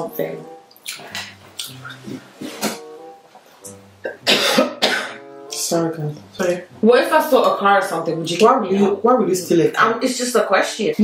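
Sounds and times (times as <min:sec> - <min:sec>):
soft background music: 0:00.0 - 0:11.0
woman coughing: 0:04.1 - 0:05.2.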